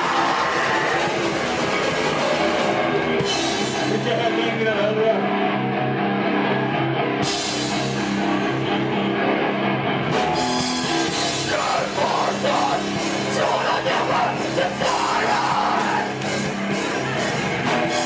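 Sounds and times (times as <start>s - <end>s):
distorted electric guitars: 0.0s - 18.0s
drums: 0.0s - 18.0s.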